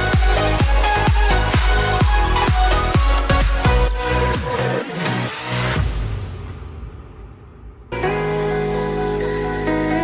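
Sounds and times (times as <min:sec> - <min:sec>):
electronic dance track: 0:00.0 - 0:10.0.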